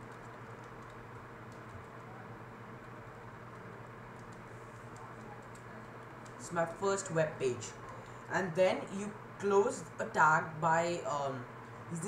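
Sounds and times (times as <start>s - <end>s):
computer keyboard typing: 0.0s - 2.1s, 4.2s - 6.4s
low background hum: 0.0s - 12.0s.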